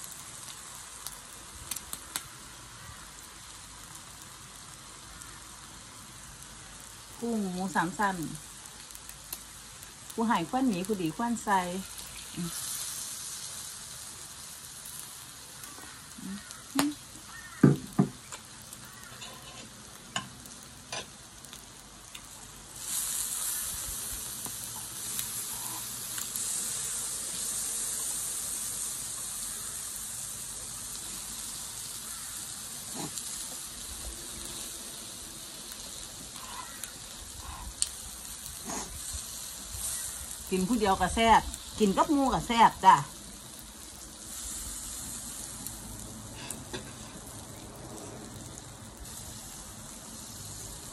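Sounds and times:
meat sizzling on a grill: 0.0 - 50.9.

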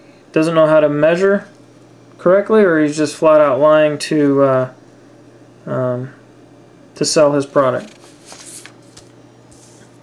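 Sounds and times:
paper sheets rustling: 7.4 - 10.0.

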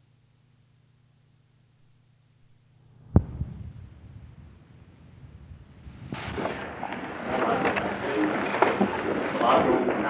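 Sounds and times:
faint hum: 0.0 - 10.0
low uneven rumbling crackle: 3.0 - 10.0
sharp low thump: 3.1 - 6.9.

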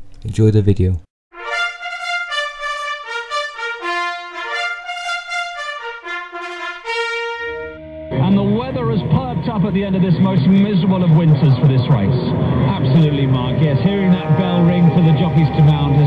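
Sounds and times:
brass fanfare trumpets: 1.3 - 8.3
low hum: 7.8 - 16.0
man commentating: 8.1 - 16.0.

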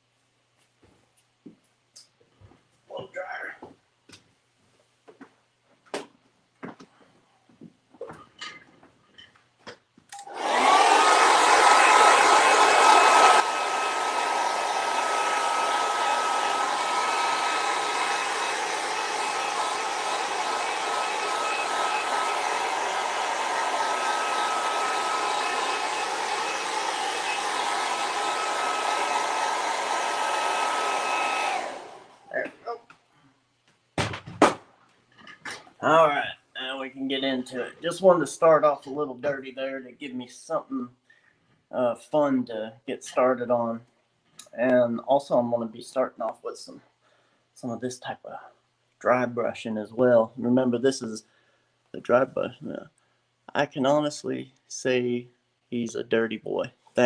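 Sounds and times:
hair dryer blowing: 10.1 - 32.4.

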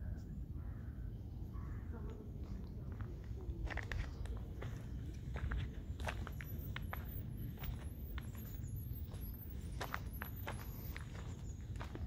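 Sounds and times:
steady low rumble: 0.0 - 12.0
footsteps on gravel: 2.9 - 12.0.

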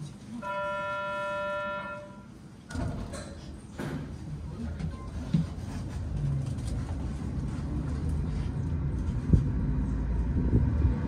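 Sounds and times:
steady buzzer tone: 0.4 - 2.3.

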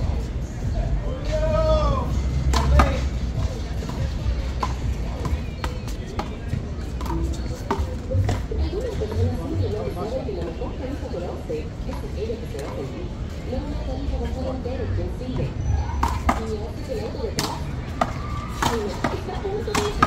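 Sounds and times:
voices: 0.0 - 20.0.

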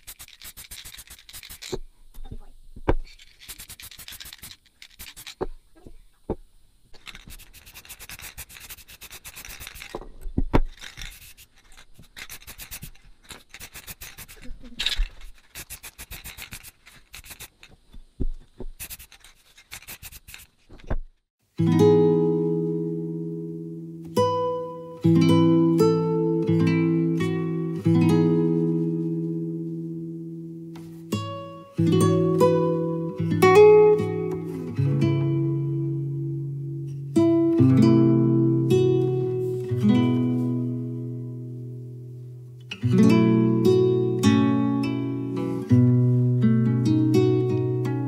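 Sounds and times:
spray can rattling and hissing: 0.0 - 1.9, 2.9 - 5.6, 6.9 - 20.8
acoustic guitar music: 21.4 - 48.0.

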